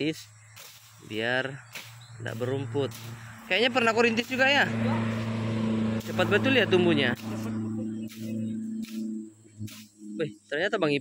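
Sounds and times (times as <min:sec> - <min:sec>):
grass being pulled by hand: 0:00.0 - 0:10.3
low engine hum: 0:02.0 - 0:10.6.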